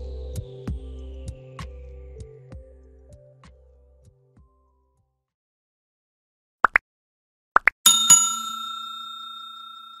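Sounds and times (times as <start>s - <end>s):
notification bell ding: 7.9s - 10.0s.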